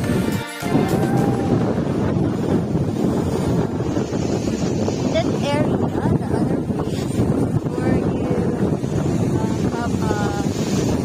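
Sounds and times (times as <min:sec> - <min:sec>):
storm waves breaking against seawall: 0:00.0 - 0:11.0
strong wind buffeting microphone: 0:00.0 - 0:11.0.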